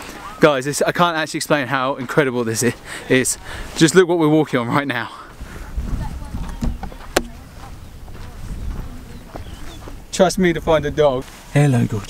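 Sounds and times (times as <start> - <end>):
wind rumbling on microphone: 5.4 - 12.0
sharp knock: 6.7 - 7.4.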